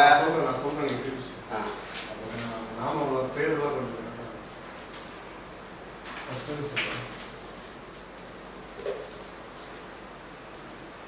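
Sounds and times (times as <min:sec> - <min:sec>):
fire crackling: 0:00.0 - 0:11.0
low background hiss: 0:00.0 - 0:11.0.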